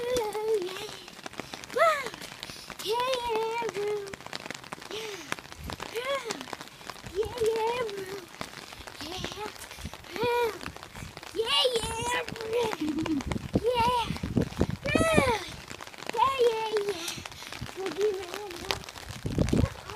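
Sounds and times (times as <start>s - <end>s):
rain pattering on hard surface: 0.0s - 19.9s
child singing wordless notes: 17.8s - 18.8s.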